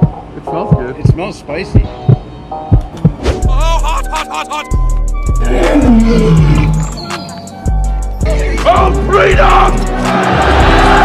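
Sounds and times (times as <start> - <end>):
background music with steady beat: 0.0 - 11.0
lion roar sound effect: 5.4 - 7.0.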